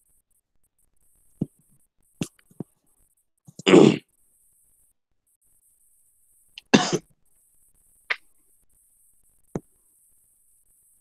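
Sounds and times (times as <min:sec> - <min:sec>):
person coughing: 0:06.7 - 0:07.0.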